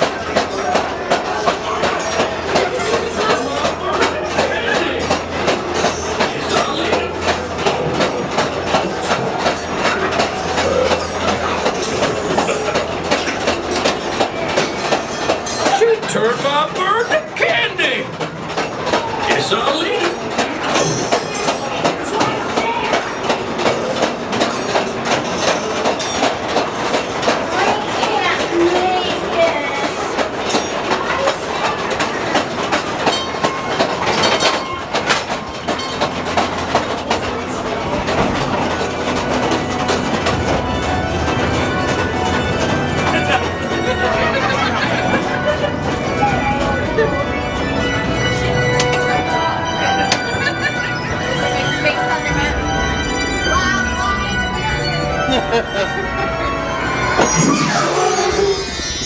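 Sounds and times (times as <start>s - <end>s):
train wheels clattering on track: 0.0s - 53.4s
indistinct voices: 0.0s - 59.0s.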